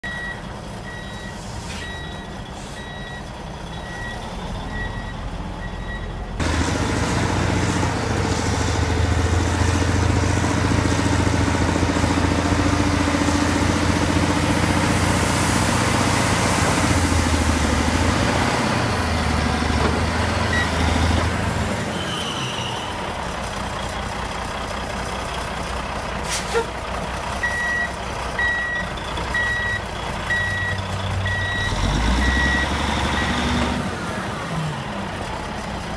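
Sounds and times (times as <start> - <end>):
reversing alarm beeps: 0.0 - 6.1, 20.5 - 20.9, 27.4 - 33.4
diesel engine running: 0.0 - 22.0, 22.6 - 35.9.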